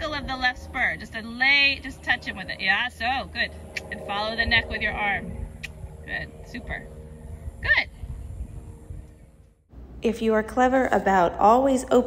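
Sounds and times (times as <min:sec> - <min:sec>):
low rumble: 0:00.0 - 0:12.0
slight steady hum: 0:00.0 - 0:12.0.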